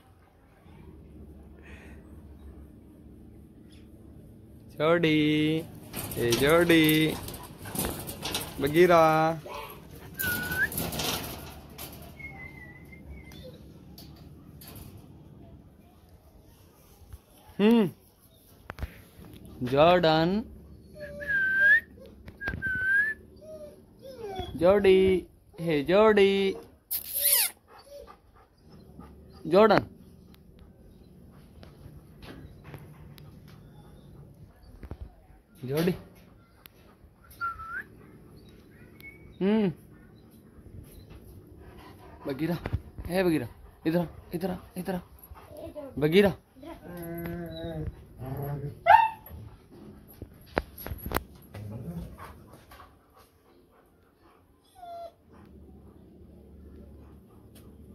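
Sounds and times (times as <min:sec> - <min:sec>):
dog whining: 0:06.0 - 0:14.2, 0:20.6 - 0:24.8, 0:26.5 - 0:31.4, 0:32.2 - 0:35.3, 0:36.4 - 0:40.3, 0:46.6 - 0:49.5, 0:54.6 - 0:55.5.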